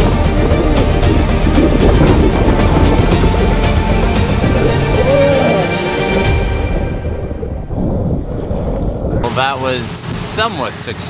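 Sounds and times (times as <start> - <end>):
wind buffeting microphone: 0.0 - 10.3.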